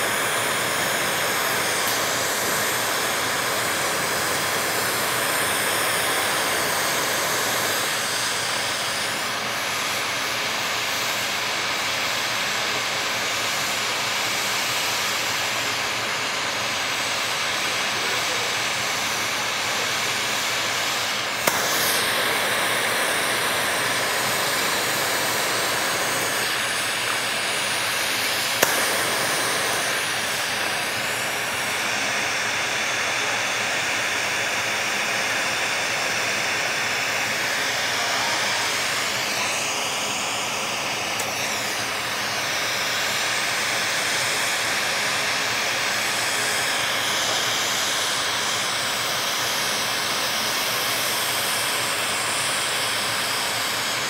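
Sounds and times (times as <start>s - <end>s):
torch flame hissing: 0.0s - 54.0s.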